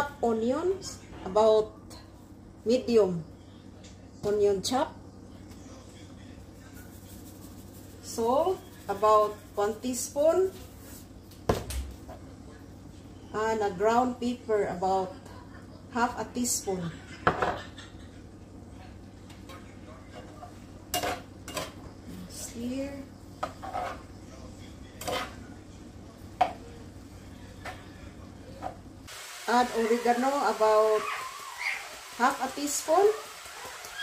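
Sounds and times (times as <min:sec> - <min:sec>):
spatula scraping a frying pan: 0:23.4 - 0:24.2, 0:25.0 - 0:25.4.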